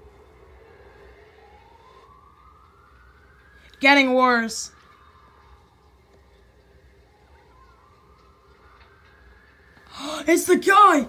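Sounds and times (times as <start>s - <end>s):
rising tone: 0.0s - 10.0s
low steady hum: 0.0s - 11.0s.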